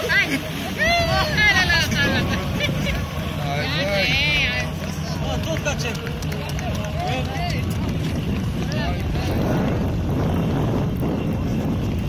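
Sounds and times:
voices calling and whooping: 0.0 - 9.9
steady low rumble: 0.0 - 12.0.

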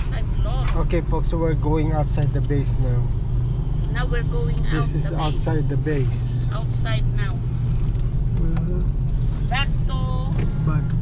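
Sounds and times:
car engine and tyres drone: 0.0 - 11.0.

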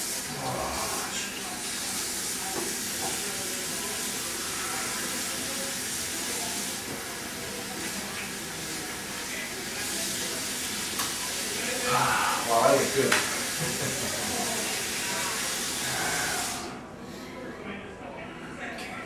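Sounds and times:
tap water running into sink: 0.0 - 16.7.

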